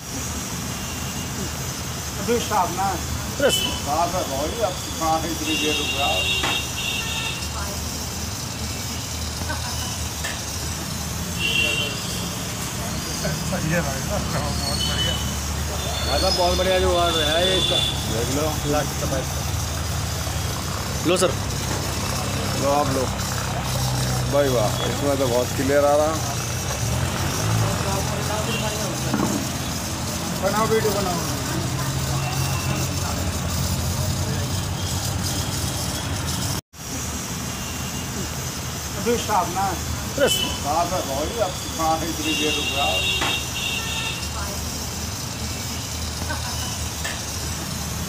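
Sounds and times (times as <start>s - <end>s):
steam hissing from pipe: 0.0s - 48.0s.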